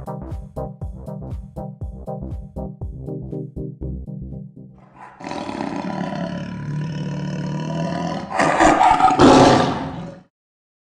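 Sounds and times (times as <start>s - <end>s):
fast electronic music beat: 0.0s - 4.5s
big cat roar: 4.8s - 10.3s.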